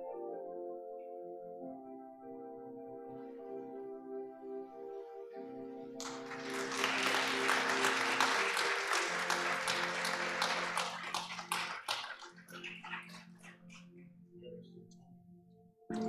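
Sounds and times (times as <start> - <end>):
soft keyboard chords: 0.0 - 16.0
congregation clapping: 6.0 - 13.9.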